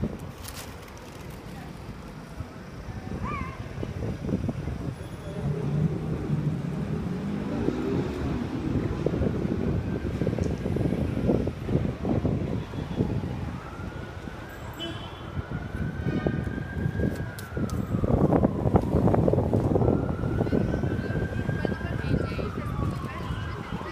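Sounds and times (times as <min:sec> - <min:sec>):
street traffic rumbling: 0:00.0 - 0:23.9
faint siren wailing: 0:02.4 - 0:23.9.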